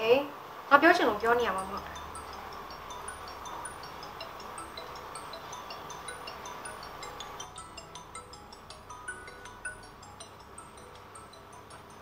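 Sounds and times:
tinkling chime-like music: 1.1 - 12.0.

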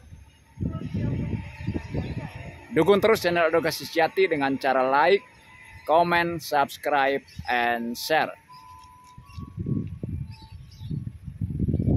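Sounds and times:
wind gusts on microphone: 0.0 - 4.2, 8.7 - 11.9.

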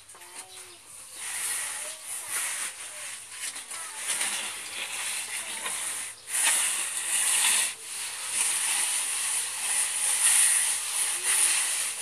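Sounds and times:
straightedge scraping cement render: 0.0 - 12.0.

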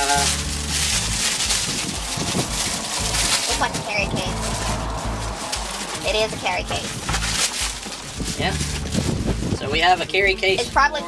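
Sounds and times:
plastic bag crinkling: 0.0 - 9.6
wind buffeting microphone: 0.6 - 10.9.

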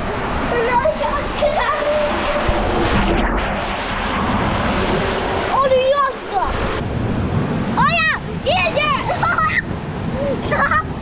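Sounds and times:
water rushing and splashing: 0.0 - 11.0.

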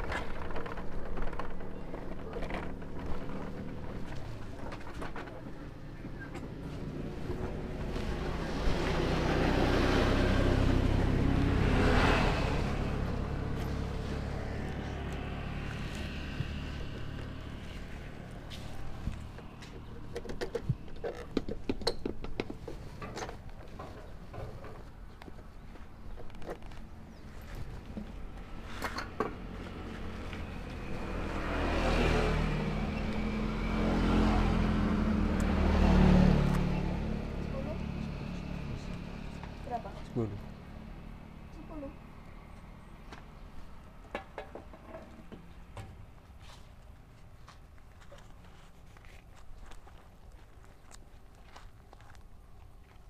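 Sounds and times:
motor vehicle passing: 0.0 - 21.3, 26.6 - 52.2.

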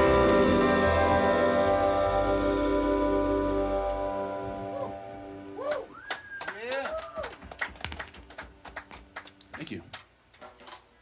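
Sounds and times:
scattered handclaps: 5.7 - 10.1.

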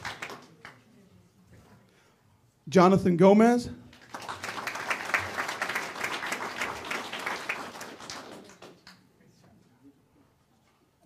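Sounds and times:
audience applauding: 0.0 - 0.8, 4.0 - 9.0.

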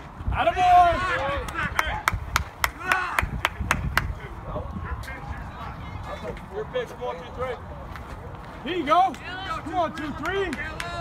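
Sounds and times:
rhythmic hand clapping: 9.8 - 11.0.

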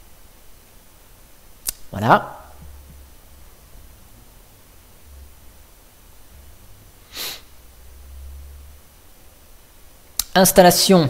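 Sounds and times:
room hiss: 0.0 - 11.0
sharp click: 1.6 - 1.9.

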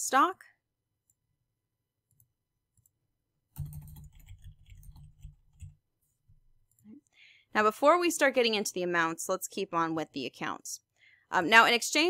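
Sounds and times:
computer keyboard typing: 2.1 - 5.8.

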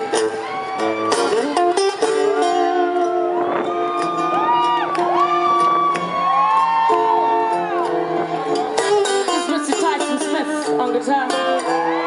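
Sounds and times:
live band playing soul music: 0.0 - 12.0.

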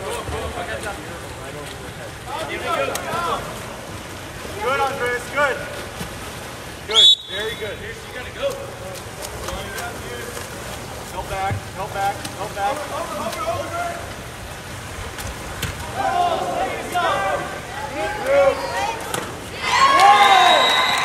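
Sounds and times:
referee's whistle blast: 6.9 - 7.6, 20.3 - 21.0
spectators shouting: 15.9 - 21.0.

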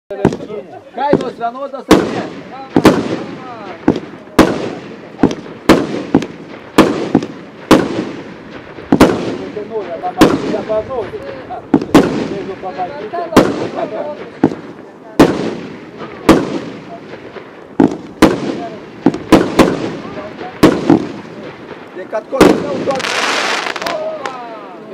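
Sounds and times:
firework bangs with echo: 0.1 - 24.9.

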